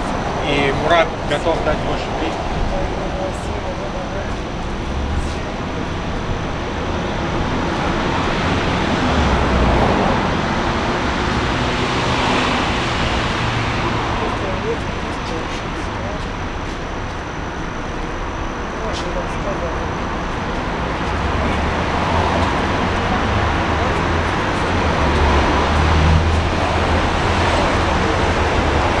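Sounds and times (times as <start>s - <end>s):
city street traffic: 0.0s - 29.0s
vehicle engine rumble passing: 0.0s - 29.0s.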